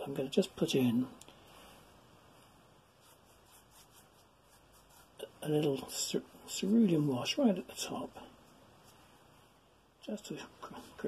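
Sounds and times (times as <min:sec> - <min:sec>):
paintbrush rubbing on paper: 0:02.4 - 0:05.9, 0:06.5 - 0:09.4.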